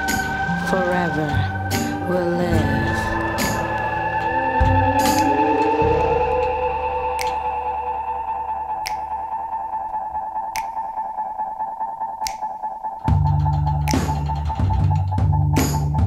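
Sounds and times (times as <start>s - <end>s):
bass and drums: 0.0s - 7.4s, 13.0s - 16.0s
held synthesizer tone: 0.0s - 12.2s.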